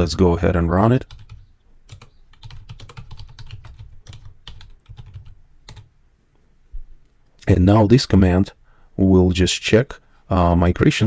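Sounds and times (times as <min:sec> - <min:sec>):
computer keyboard typing: 0:01.0 - 0:05.9.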